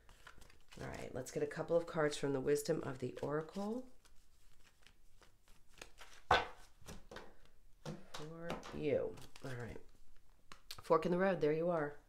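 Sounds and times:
cards being shuffled: 0:00.0 - 0:01.9, 0:02.6 - 0:10.7.

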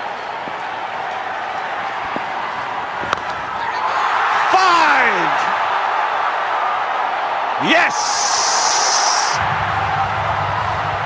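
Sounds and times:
stadium crowd cheering: 0:00.0 - 0:11.0
person shouting: 0:04.4 - 0:05.3, 0:07.6 - 0:09.4.

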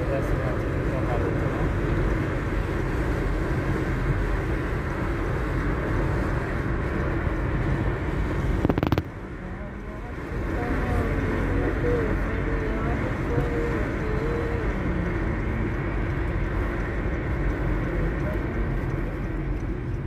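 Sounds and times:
car cabin road and engine noise: 0:00.0 - 0:20.0
loud crackle: 0:08.4 - 0:09.4.

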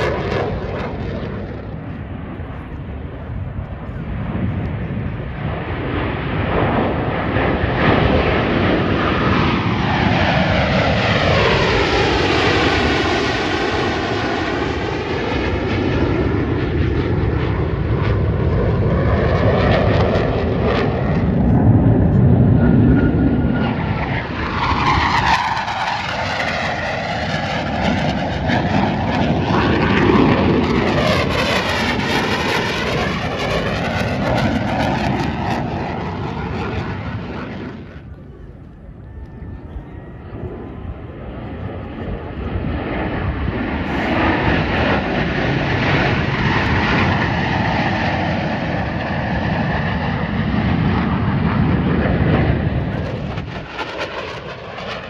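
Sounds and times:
fighter jets flying past: 0:00.0 - 0:55.0.

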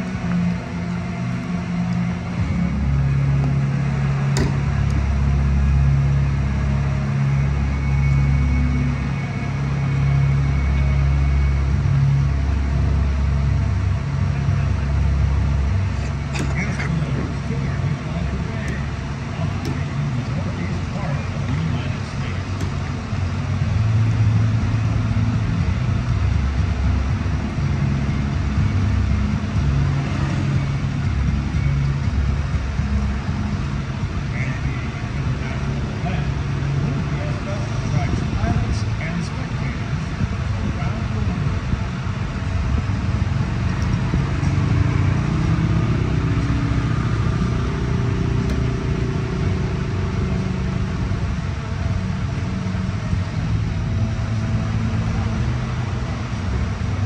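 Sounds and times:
crowd voices: 0:00.0 - 0:12.4, 0:13.0 - 0:25.8, 0:29.4 - 0:45.8
low mechanical hum: 0:00.0 - 0:57.0.

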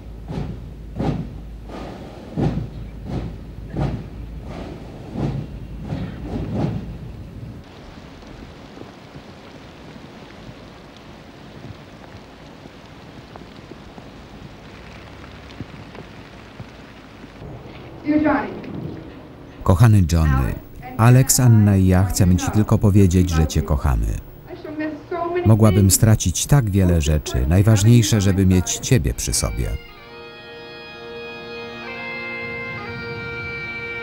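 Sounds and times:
marching band drumbeat: 0:00.2 - 0:06.8
rain falling: 0:07.0 - 0:24.6, 0:25.5 - 0:30.0.

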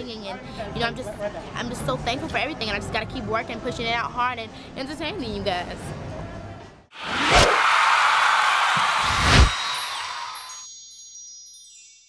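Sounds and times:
long whooshing rush: 0:07.0 - 0:10.6
twinkling chime tones: 0:09.5 - 0:12.0.

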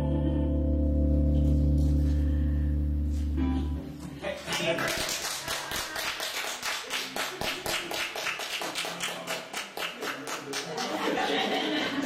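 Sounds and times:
audience applauding: 0:04.2 - 0:12.0.

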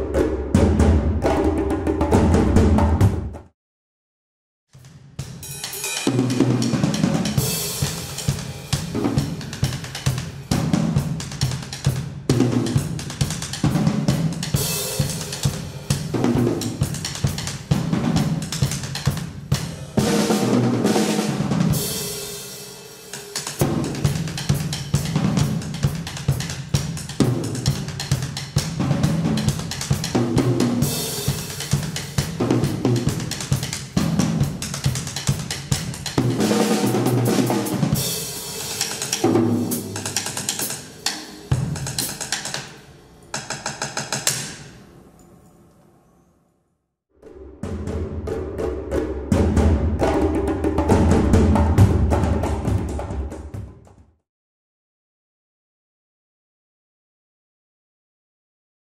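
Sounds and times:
drum kit solo: 0:04.8 - 0:44.8, 0:47.4 - 0:53.8
cymbal washes: 0:37.6 - 0:45.1.

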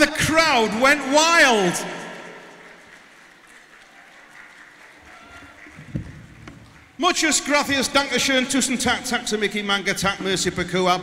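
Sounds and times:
light applause: 0:01.4 - 0:07.6.

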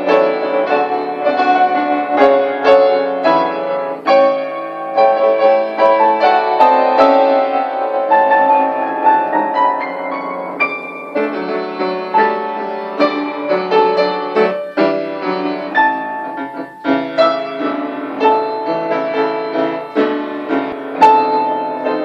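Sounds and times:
solo piano playing: 0:00.0 - 0:22.0.

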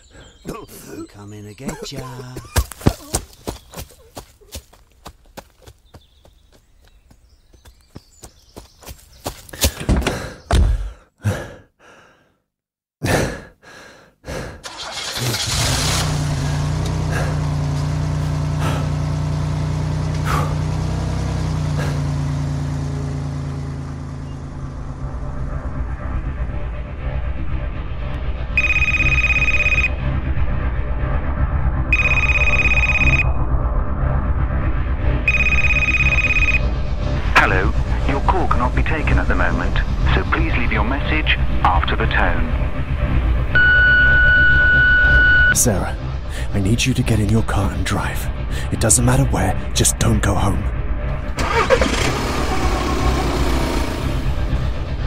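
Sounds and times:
knocks and thuds: 0:09.6 - 0:11.0
car engine starting and running: 0:14.4 - 0:55.0
phone ringing: 0:28.6 - 0:29.9, 0:32.0 - 0:33.3, 0:35.3 - 0:36.6.

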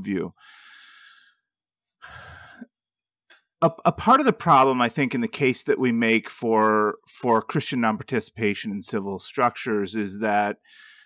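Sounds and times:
man breathing close to microphone: 0:00.4 - 0:02.7, 0:10.6 - 0:11.0.

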